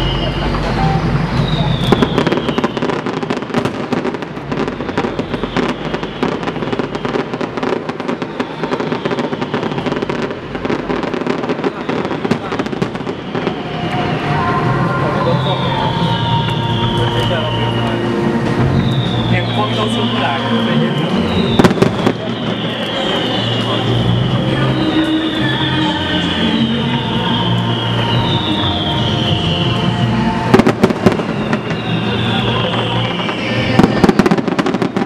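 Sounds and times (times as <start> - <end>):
fireworks bangs and crackling: 0.0 - 35.0.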